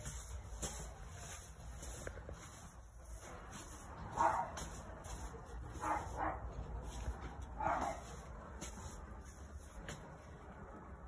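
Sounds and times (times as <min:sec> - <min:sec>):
dog barking: 0:04.1 - 0:04.6, 0:05.8 - 0:06.6, 0:07.6 - 0:08.2.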